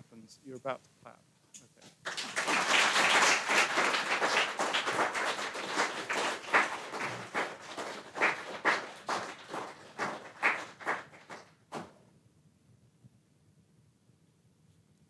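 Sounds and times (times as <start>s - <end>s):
audience applauding: 2.0s - 11.9s.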